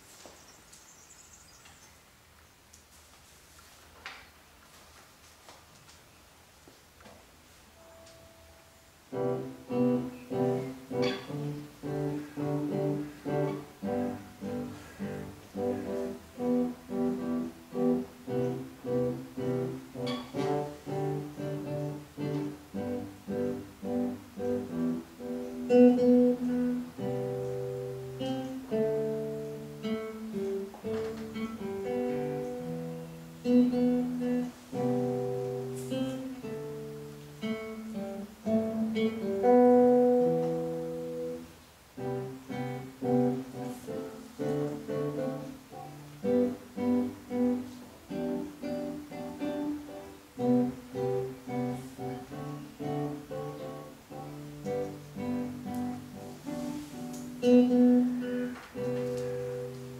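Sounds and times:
fingerstyle acoustic guitar: 9.1 - 59.9.

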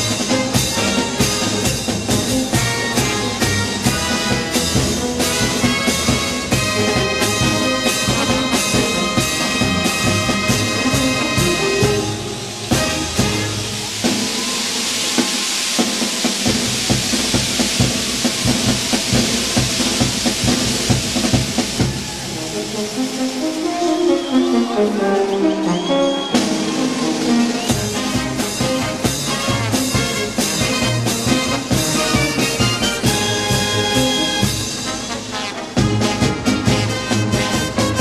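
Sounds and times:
steady drum beat: 0.0 - 23.0, 26.2 - 38.0
brass band playing: 0.0 - 38.0
crowd noise: 0.0 - 38.0.

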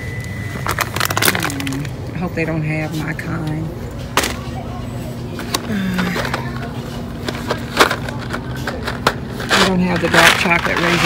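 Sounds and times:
cardboard boxes rummaged on shelf: 5.4 - 11.0.

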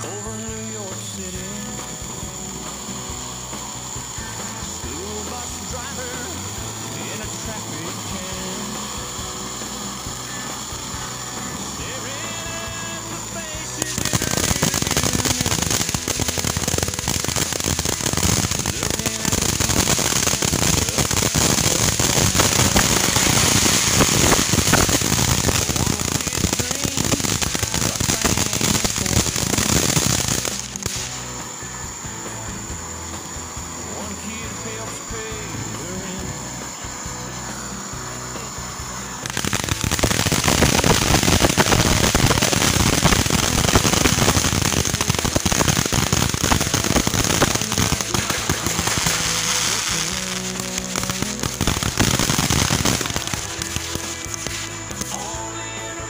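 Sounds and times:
fireworks crackling: 0.0 - 56.0.

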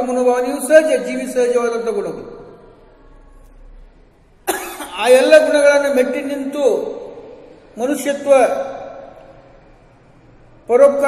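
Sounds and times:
man coughing: 4.4 - 5.0.

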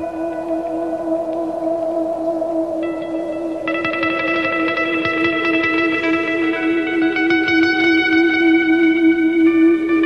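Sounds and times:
higher notes: 0.0 - 10.0
sustained wavering drone note: 0.0 - 10.0.

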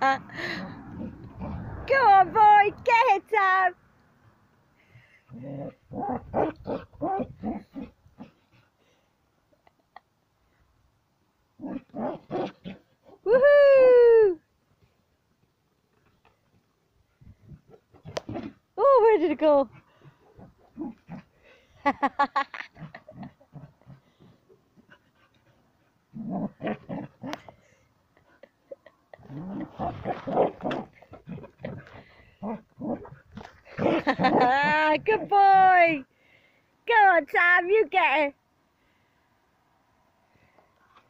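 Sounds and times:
person laughing: 21.8 - 23.6, 33.7 - 35.0.

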